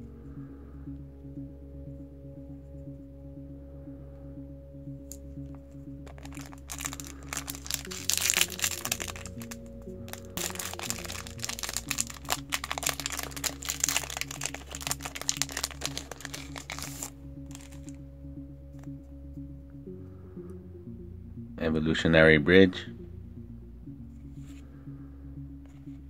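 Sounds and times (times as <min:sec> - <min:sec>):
background music: 0:00.0 - 0:26.0
foil wrapper crinkling: 0:06.0 - 0:17.9.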